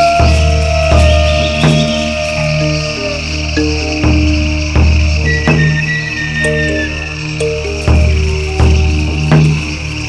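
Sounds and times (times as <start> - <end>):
deep drum beats: 0.0 - 10.0
held melodic notes: 0.0 - 10.0
high-pitched nature ambience: 0.0 - 10.0.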